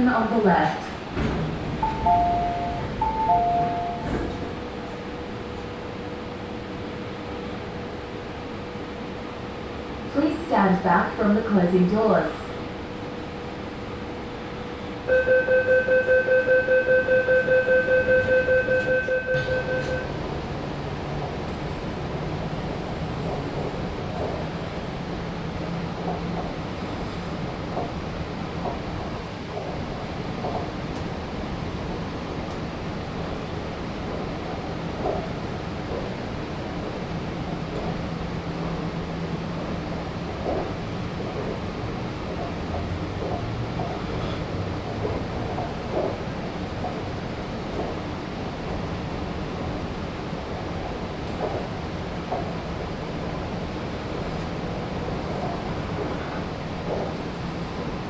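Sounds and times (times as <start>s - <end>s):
train motors humming: 0.0s - 15.2s, 16.6s - 58.0s
train rolling noise: 0.0s - 58.0s
train door warning beeps: 1.8s - 4.6s, 15.1s - 20.2s.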